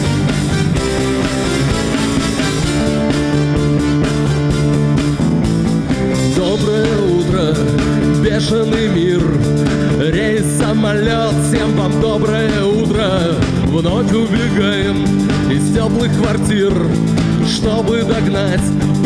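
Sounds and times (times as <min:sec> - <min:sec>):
wavering lead melody: 0:00.0 - 0:06.8
bass guitar: 0:00.0 - 0:19.0
drums: 0:00.0 - 0:19.0
synthesizer: 0:00.0 - 0:19.0.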